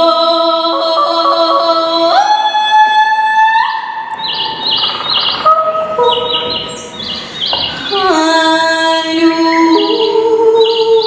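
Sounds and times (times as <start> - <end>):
woman singing wordlessly: 0.0 - 4.0, 5.4 - 6.9, 7.8 - 11.0
steady held tones: 0.7 - 11.0
bird-like chirps: 4.2 - 8.2, 9.5 - 11.0.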